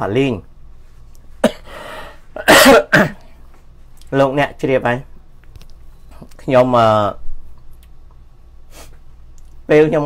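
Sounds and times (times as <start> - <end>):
man coughing: 1.4 - 1.8, 2.4 - 3.4.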